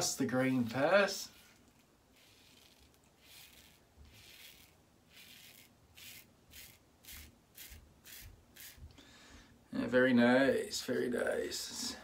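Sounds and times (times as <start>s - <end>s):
safety razor scraping stubble: 0.5s - 8.8s.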